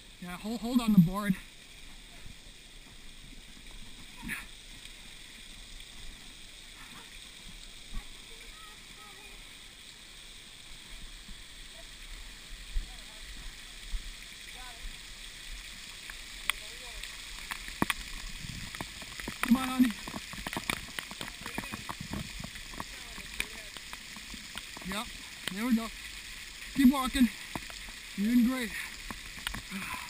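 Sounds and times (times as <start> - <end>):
water spraying from sprinkler: 0.0 - 30.0.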